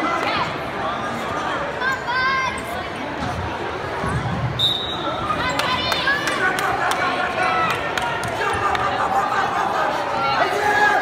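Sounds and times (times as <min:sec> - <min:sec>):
chatter of spectators: 0:00.0 - 0:11.0
referee's whistle blast: 0:04.6 - 0:05.1.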